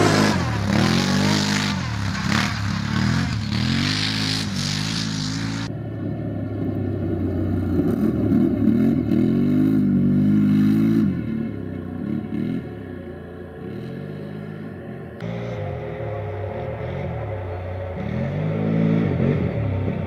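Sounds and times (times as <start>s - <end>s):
quad engine revving hard: 0.0s - 5.7s.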